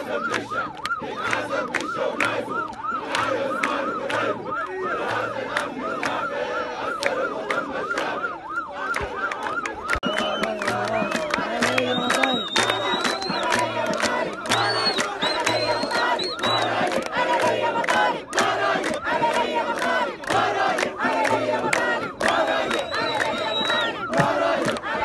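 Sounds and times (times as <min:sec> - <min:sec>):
crowd chanting and shouting: 0:00.0 - 0:25.0
hand claps: 0:00.2 - 0:06.2, 0:07.0 - 0:08.1, 0:08.9 - 0:25.0
high whistle blasts: 0:04.6 - 0:13.7, 0:14.5 - 0:16.8, 0:22.5 - 0:24.1.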